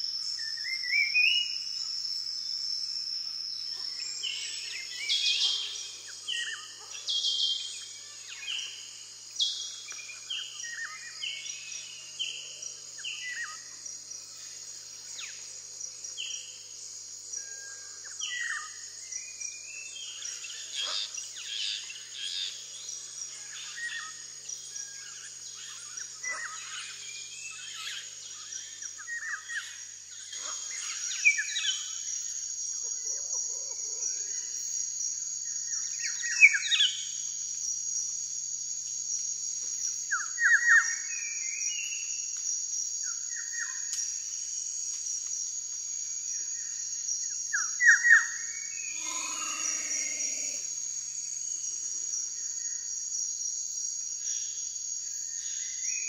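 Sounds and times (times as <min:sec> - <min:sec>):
insects chorus: 0:00.0 - 0:56.0.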